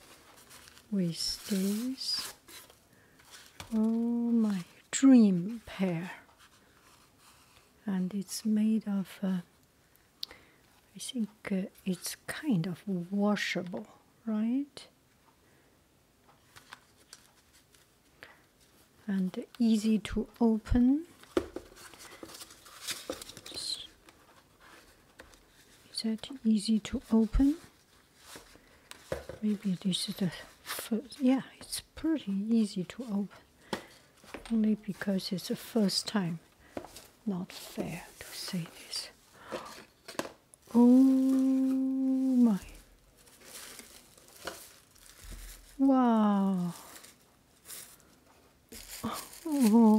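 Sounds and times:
tissue paper rustling: 0.0 - 5.7, 21.2 - 31.1, 36.7 - 49.9.

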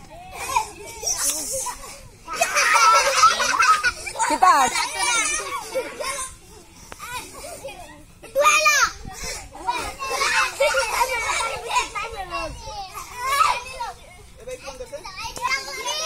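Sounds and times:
children shouting excitedly: 0.0 - 16.0.

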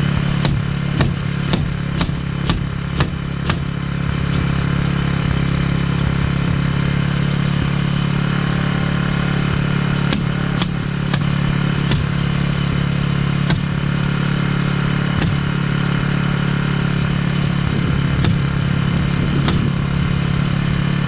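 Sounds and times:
generator engine running: 0.0 - 21.0
nail gun shots: 0.3 - 4.5, 10.0 - 12.2, 13.4 - 13.8, 15.2 - 15.5, 18.2 - 18.7, 19.4 - 19.8.

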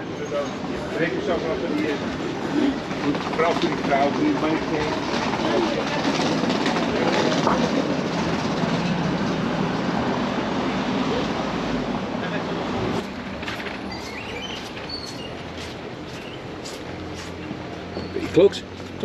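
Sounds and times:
city street rumble: 0.0 - 19.0.

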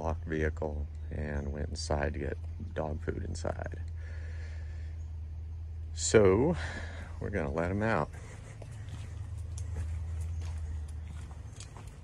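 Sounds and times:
steady low rumble: 0.0 - 12.0
footsteps on concrete: 8.0 - 12.0.

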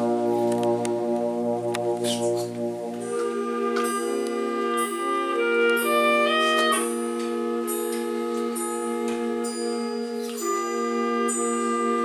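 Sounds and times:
brass band sustained chord: 0.0 - 12.0.

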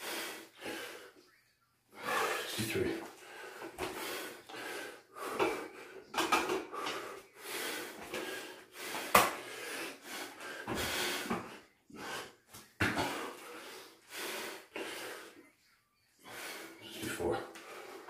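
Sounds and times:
man breathing heavily: 0.0 - 1.3, 1.9 - 18.0.

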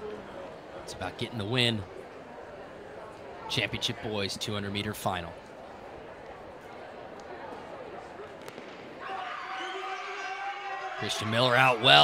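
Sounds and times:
crowd shouting and cheering: 8.5 - 12.0.

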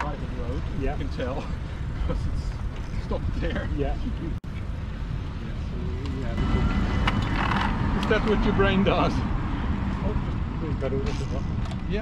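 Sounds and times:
road rumble: 0.0 - 12.0
van engine passing: 6.2 - 12.0.

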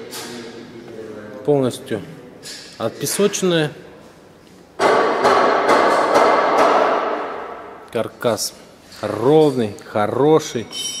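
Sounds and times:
loud metallic clang ringing: 10.6 - 11.0.

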